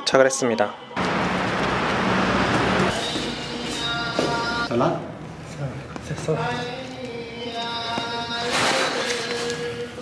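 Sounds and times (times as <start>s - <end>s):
street traffic noise: 1.0s - 6.1s
background music: 2.7s - 5.4s, 6.0s - 10.0s.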